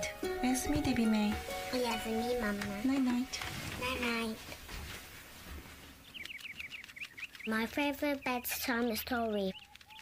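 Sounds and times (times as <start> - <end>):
small bird twittering: 6.0 - 10.0.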